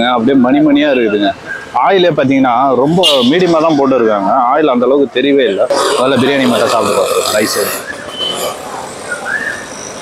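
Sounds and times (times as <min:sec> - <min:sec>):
street background noise: 0:00.0 - 0:10.0
man's short vocal sound: 0:05.7 - 0:08.6.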